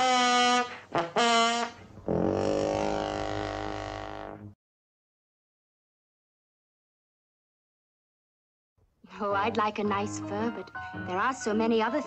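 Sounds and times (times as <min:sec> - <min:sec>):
long low buzzy note: 0:01.5 - 0:04.6.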